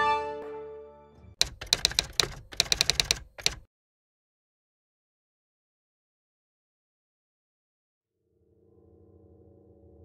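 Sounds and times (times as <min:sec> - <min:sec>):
sharp keyboard key clicks: 0:01.4 - 0:03.7.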